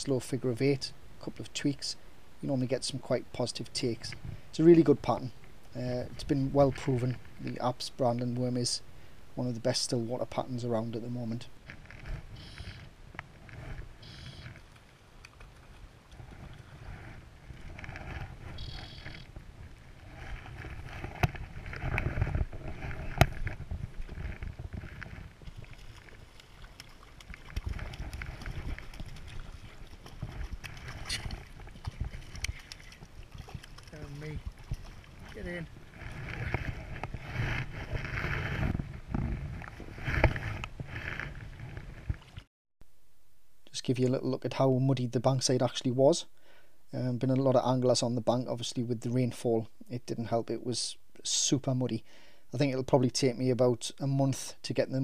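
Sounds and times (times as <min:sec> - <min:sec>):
wind rumbling on microphone: 0:03.8 - 0:05.2, 0:10.1 - 0:42.5.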